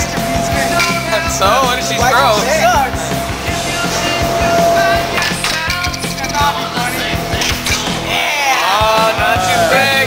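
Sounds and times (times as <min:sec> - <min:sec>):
loud rock music: 0:00.0 - 0:10.0
air hockey puck and mallets clacking: 0:05.2 - 0:06.5, 0:07.3 - 0:08.0.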